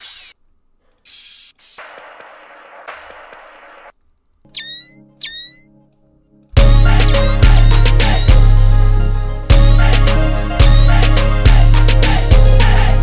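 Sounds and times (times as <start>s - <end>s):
hiss bursts: 1.0s - 3.9s
static-like noise: 1.5s - 4.0s.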